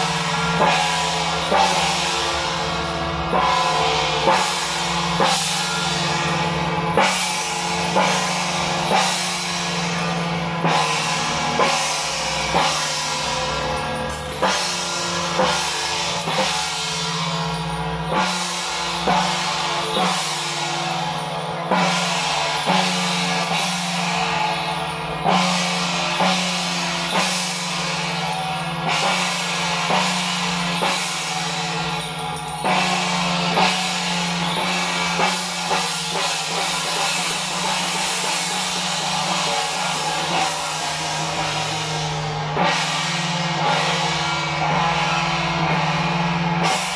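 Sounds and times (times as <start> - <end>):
large cymbals ringing: 0.0 - 46.9
frame drum beats: 0.1 - 46.9.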